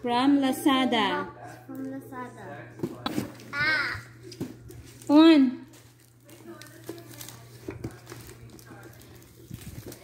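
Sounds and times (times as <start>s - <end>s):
handling knocks and rustles: 5.7s - 10.0s.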